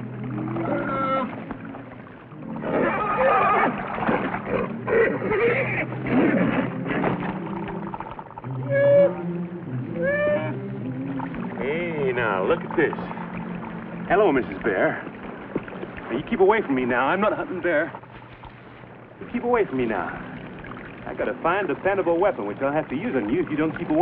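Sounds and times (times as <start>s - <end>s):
horse whinnying and squealing: 2.6s - 3.8s, 4.9s - 6.6s.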